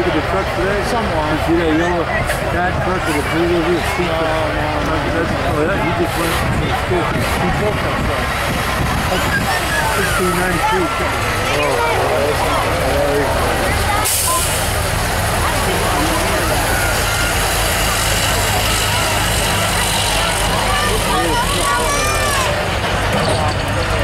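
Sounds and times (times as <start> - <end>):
crowd chatter: 0.0 - 24.0
diesel engine under heavy load: 0.0 - 24.0.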